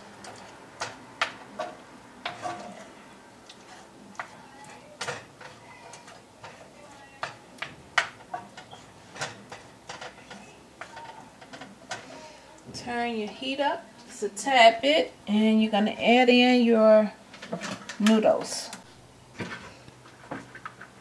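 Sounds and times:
wooden spoon scraping a skillet: 0.0s - 14.6s, 17.3s - 21.0s.

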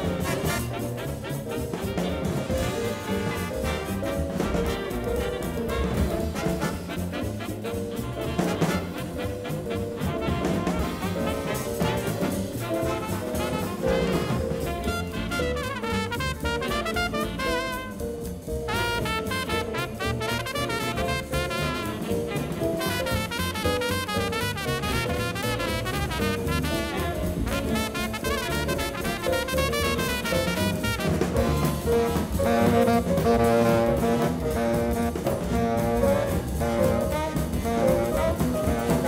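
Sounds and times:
horn section held chords: 0.0s - 7.8s, 8.4s - 18.1s, 18.7s - 35.1s
big jazz band playing: 0.0s - 39.0s.

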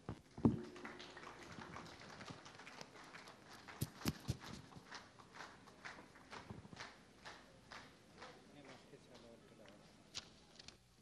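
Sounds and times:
footsteps on stage floor: 3.8s - 5.0s.

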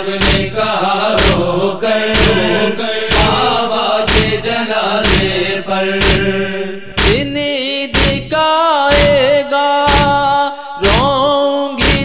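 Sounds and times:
heavy drum beat: 0.0s - 12.0s
voices chanting a lament: 0.0s - 12.0s.

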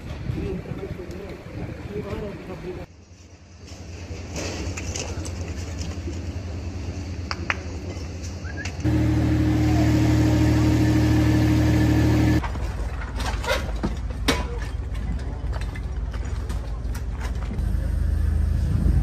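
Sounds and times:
machine engine humming: 8.8s - 12.4s, 17.6s - 19.0s.

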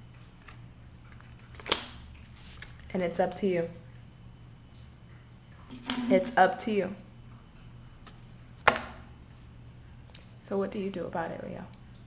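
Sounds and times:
card snapping: 5.7s - 6.2s.

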